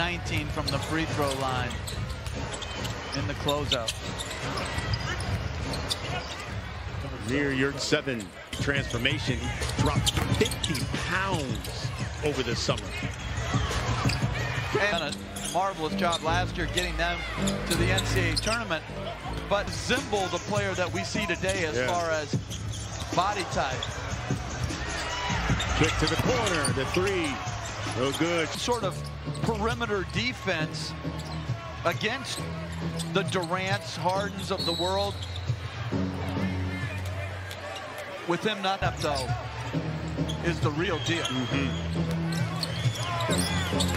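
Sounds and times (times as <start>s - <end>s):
arena crowd murmur: 0.0s - 43.9s.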